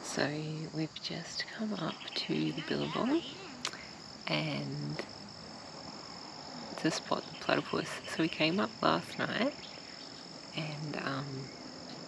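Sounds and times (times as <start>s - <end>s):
woman's low voice: 0.0s - 5.1s, 10.6s - 11.5s
crickets trilling: 0.0s - 12.0s.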